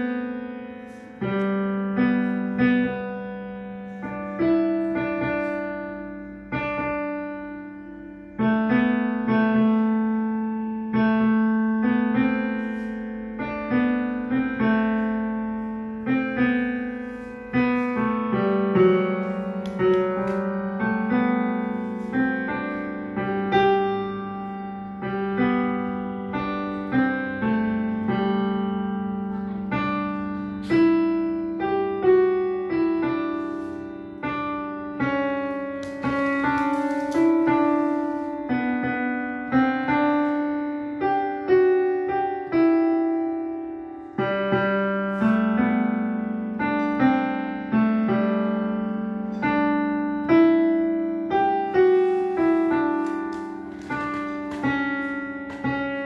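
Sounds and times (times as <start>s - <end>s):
slow digital piano playing: 0.0s - 56.0s.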